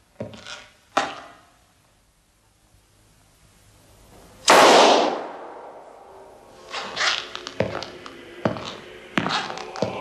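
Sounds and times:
handgun shot: 4.5s - 5.7s.

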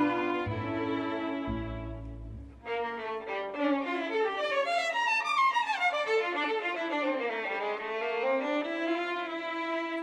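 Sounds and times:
violin melody: 0.0s - 10.0s.

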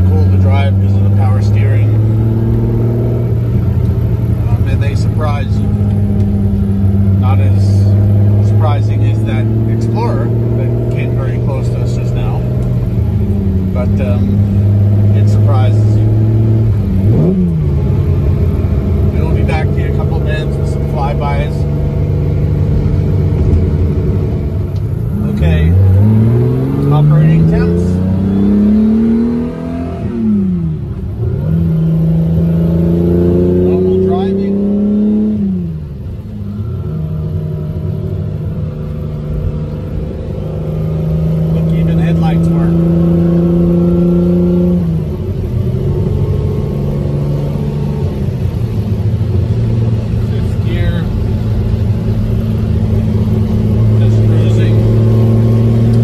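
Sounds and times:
car engine revving in cabin: 0.0s - 56.0s.

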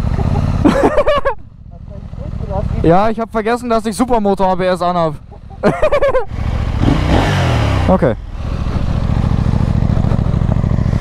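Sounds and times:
motorcycle engine starting and running: 0.0s - 11.0s.

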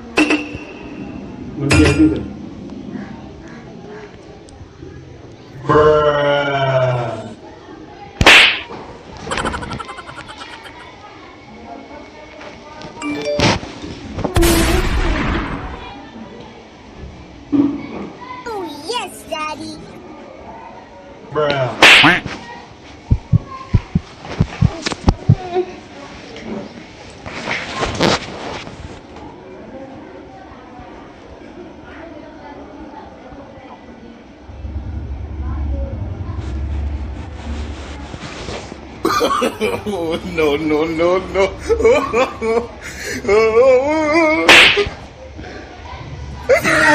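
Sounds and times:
loud slap crack: 8.2s - 8.8s, 14.4s - 15.8s, 21.8s - 22.3s, 44.5s - 45.0s
sounds of movement: 34.4s - 39.0s.

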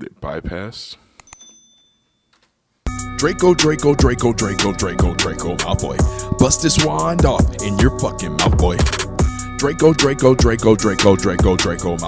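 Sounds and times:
hip-hop track with rapping: 2.9s - 12.0s.

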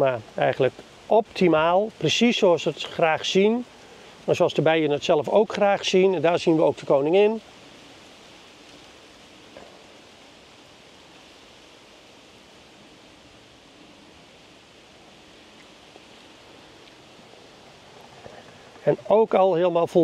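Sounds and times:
faint outdoor background noise: 0.0s - 20.0s.

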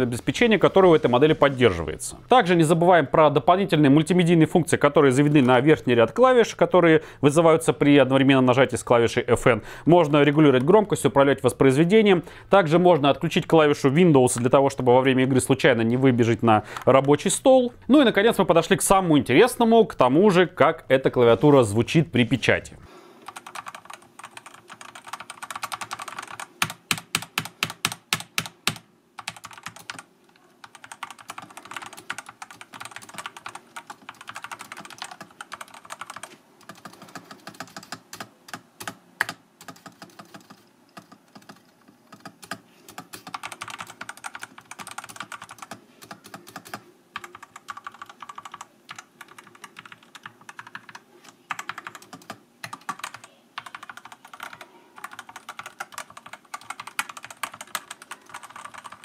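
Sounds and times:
mechanical keyboard typing: 23.2s - 59.0s.

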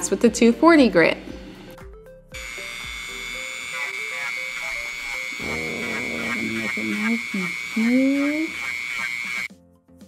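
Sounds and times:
rotary tool whining: 2.4s - 9.5s
sanding band on foam: 2.9s - 9.5s.

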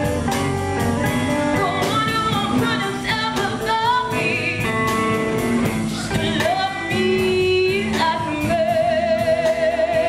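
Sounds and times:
live blues band playing: 0.0s - 10.0s
woman singing: 1.5s - 5.3s, 5.9s - 10.0s.

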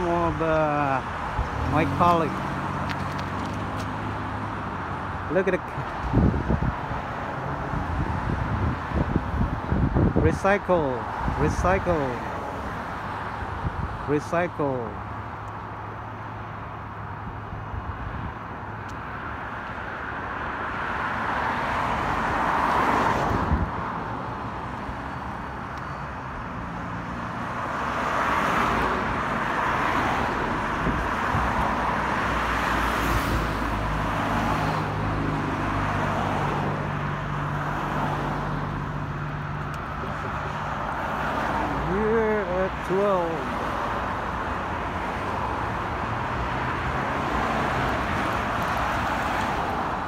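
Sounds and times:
cars passing: 0.0s - 50.0s.

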